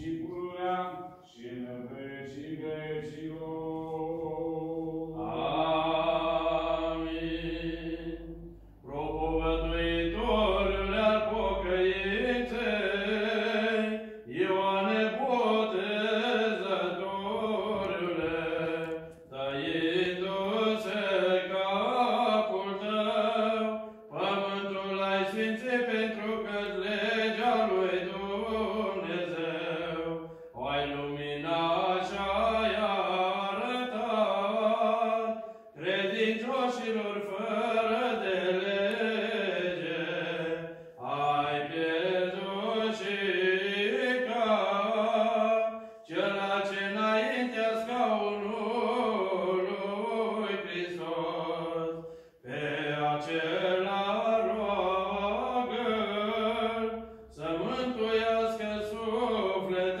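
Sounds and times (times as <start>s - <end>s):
man chanting: 0.0s - 60.0s.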